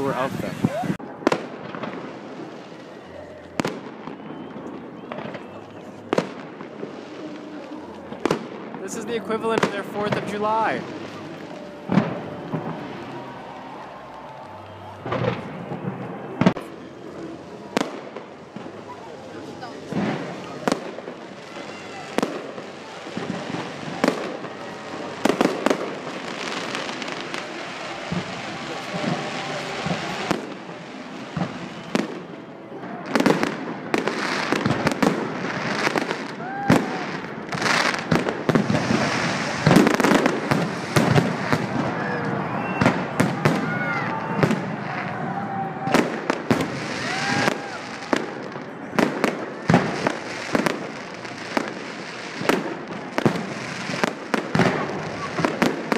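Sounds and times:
fireworks crackle and rumble: 0:00.0 - 0:55.9.

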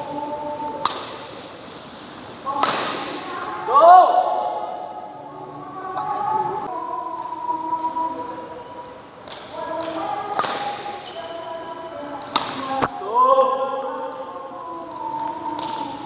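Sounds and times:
voices in hall: 0:00.0 - 0:16.0
racket hitting shuttlecock: 0:00.8 - 0:01.2, 0:02.6 - 0:03.2, 0:10.3 - 0:11.0, 0:12.2 - 0:12.8.

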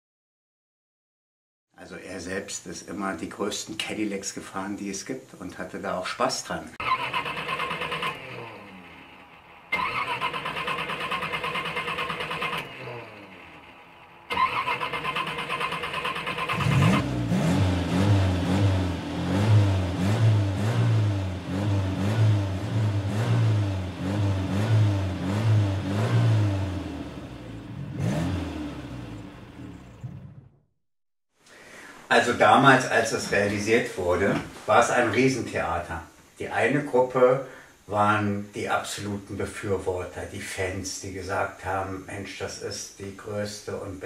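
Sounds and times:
car starter cranking: 0:06.8 - 0:17.1
car engine revving: 0:06.8 - 0:30.6.

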